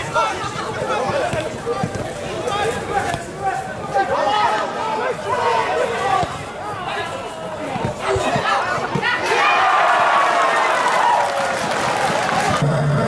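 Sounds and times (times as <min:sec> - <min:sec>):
voices talking and calling: 0:00.0 - 0:10.9.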